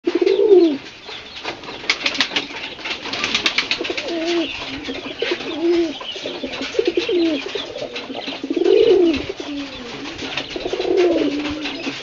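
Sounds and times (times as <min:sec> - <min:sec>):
pigeon cooing: 0:00.0 - 0:12.0
pigeon wings fluttering: 0:01.4 - 0:12.0.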